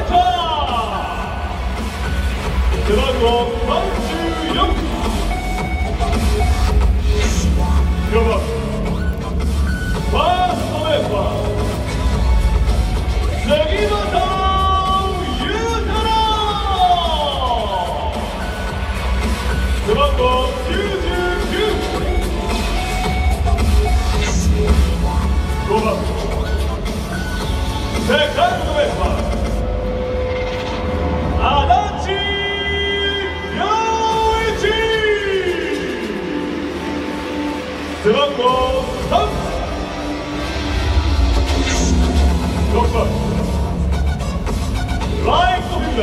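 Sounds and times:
male announcer speaking: 0.0s - 2.0s, 2.7s - 5.6s, 7.2s - 9.1s, 10.0s - 12.0s, 13.2s - 18.9s, 19.7s - 22.5s, 24.2s - 26.6s, 28.0s - 29.5s, 31.4s - 36.9s, 37.8s - 40.0s, 41.5s - 43.9s, 45.0s - 46.0s
bass-heavy stadium music: 0.0s - 46.0s.

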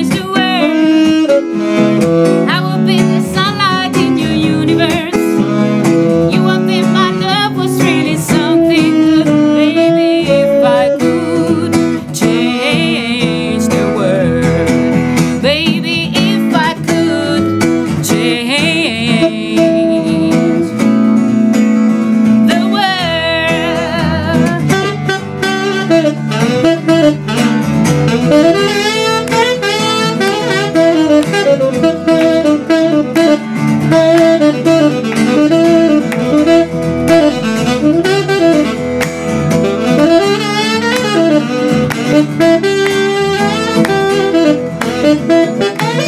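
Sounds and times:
acoustic guitar: 0.0s - 46.0s
saxophone melody with vibrato: 0.0s - 46.0s.

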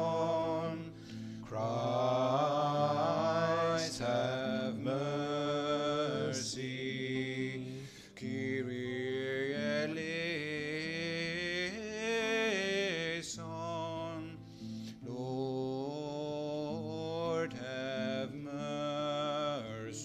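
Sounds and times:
slow sung chant: 0.0s - 20.0s.

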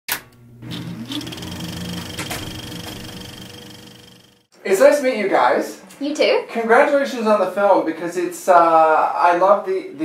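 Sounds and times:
low drone with rising tone: 0.8s - 4.5s.

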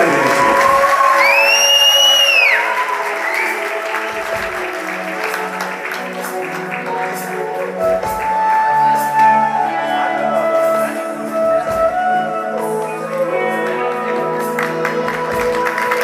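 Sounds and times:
audience applause: 0.0s - 8.6s, 13.0s - 16.0s
sustained background music: 0.0s - 16.0s.

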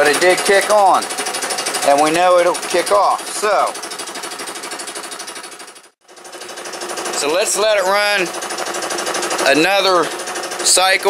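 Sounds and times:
air compressor pulsing: 0.0s - 11.0s.

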